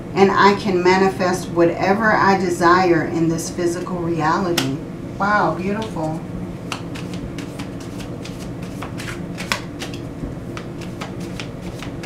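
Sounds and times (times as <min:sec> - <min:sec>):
cards being shuffled: 0:06.7 - 0:12.0.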